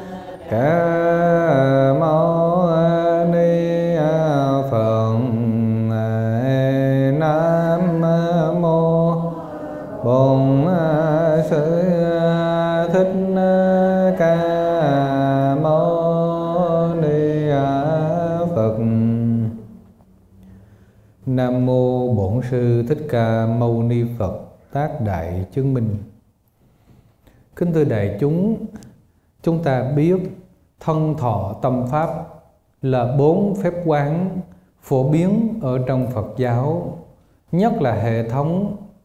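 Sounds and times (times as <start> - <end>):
man chanting slowly: 0.0 - 19.8, 21.2 - 26.1, 29.4 - 39.0.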